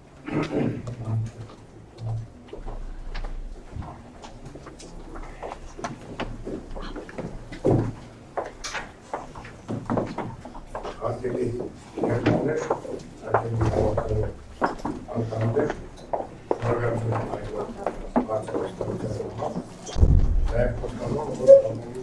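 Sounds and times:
chairs and objects knocking: 6.1s - 10.9s.

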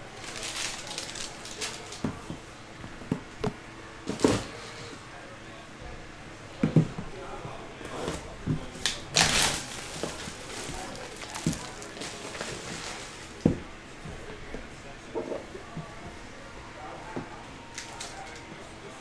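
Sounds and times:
plastic shrink wrap crinkling: 0.0s - 2.2s, 8.8s - 13.3s, 17.7s - 18.4s.

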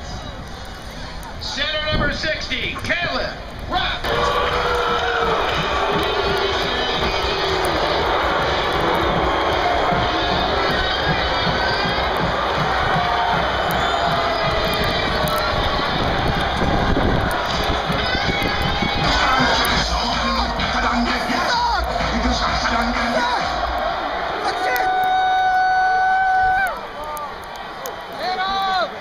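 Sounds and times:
stadium crowd noise: 0.0s - 29.0s
wind buffeting microphone: 3.5s - 20.7s
music playing: 4.0s - 24.8s.

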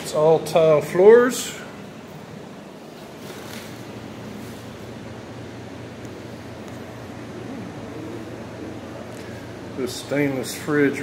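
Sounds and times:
air conditioner running: 0.0s - 11.0s.

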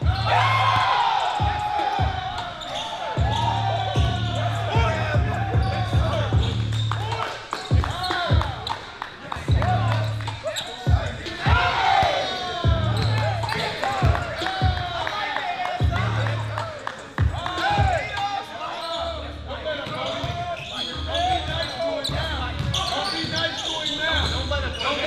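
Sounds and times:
people shouting: 0.0s - 8.7s, 11.2s - 16.2s.

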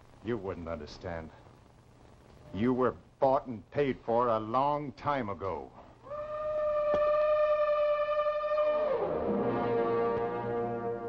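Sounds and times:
dramatic music sting: 8.7s - 11.0s.

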